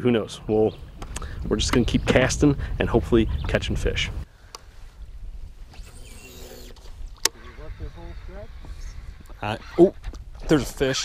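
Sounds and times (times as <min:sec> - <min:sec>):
wind on microphone: 0:00.4 - 0:11.0.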